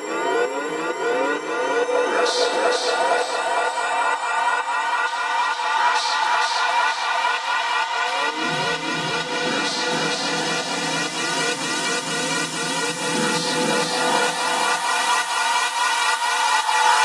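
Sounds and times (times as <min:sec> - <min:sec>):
techno music: 0:00.0 - 0:17.0.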